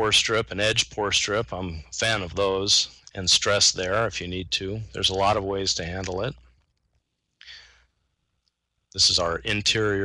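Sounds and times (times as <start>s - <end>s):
man breathing into a microphone: 7.4s - 8.0s.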